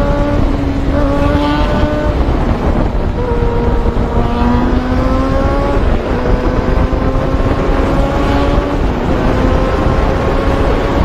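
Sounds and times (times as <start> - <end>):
motorcycle engine at speed: 0.0 - 11.0
wind rush on microphone: 0.0 - 11.0.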